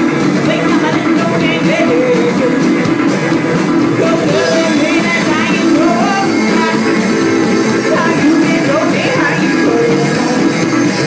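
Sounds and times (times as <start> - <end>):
person singing: 0.0 - 3.0, 3.9 - 11.0
drums: 0.0 - 11.0
electric guitar: 0.0 - 11.0
garage rock band: 0.0 - 11.0
organ: 0.0 - 11.0.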